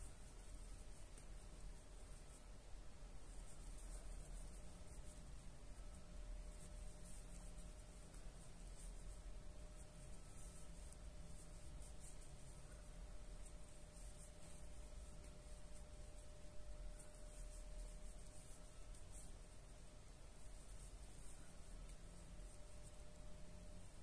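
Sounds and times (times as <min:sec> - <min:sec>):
faint room hum: 0:00.0 - 0:24.0
yarn rustling: 0:00.0 - 0:24.0.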